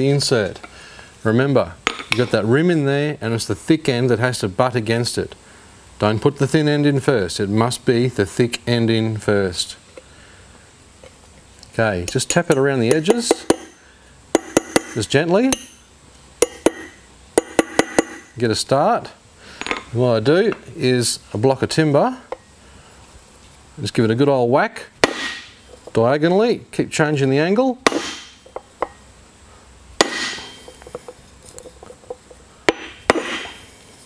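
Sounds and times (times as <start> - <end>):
hammer tapping on steel: 14.4 - 15.8, 16.4 - 18.3
hammer blows on timber: 30.0 - 31.1
metal ringing: 30.0 - 31.1.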